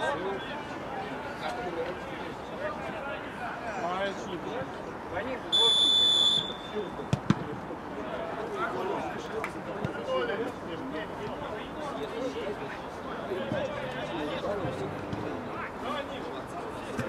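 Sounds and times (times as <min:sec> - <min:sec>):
referee's whistle blast: 0:05.5 - 0:06.9.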